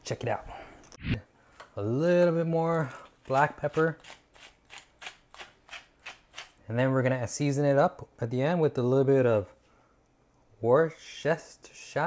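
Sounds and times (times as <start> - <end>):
pepper grinder rasping: 2.8 - 6.6.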